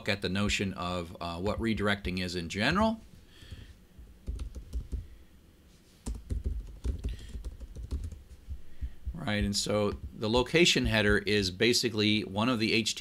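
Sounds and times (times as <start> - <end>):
typing on computer keyboard: 4.2 - 5.1, 6.1 - 8.2.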